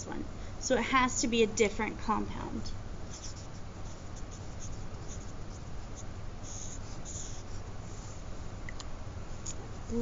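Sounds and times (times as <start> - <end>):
steady low hum: 0.0 - 10.0
marker writing on paper: 3.0 - 7.7.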